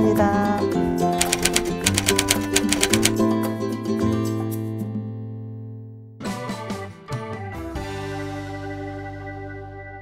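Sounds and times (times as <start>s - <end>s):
rapid typewriter clicking: 1.2s - 3.2s.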